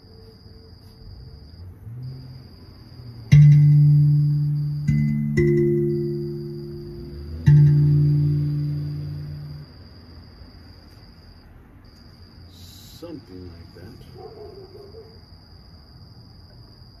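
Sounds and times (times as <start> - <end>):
crickets trilling: 0.0 - 17.0
steel tongue drum note ringing: 3.3 - 9.7.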